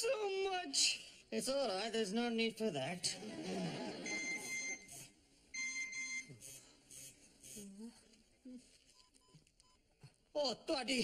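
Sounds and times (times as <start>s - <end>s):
electronic beeps: 4.0s - 5.0s.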